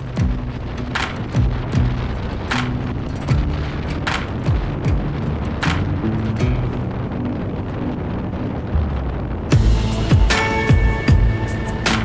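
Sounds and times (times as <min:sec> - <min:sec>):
deep bass line: 0:00.0 - 0:12.0.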